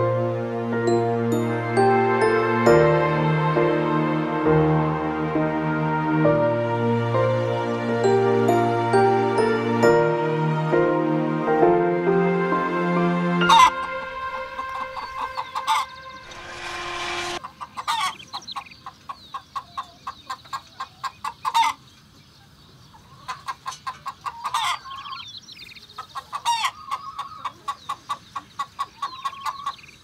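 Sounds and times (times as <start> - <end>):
chickens clucking: 14.6 - 16.0, 17.4 - 30.0
short rushing noise: 16.0 - 17.4.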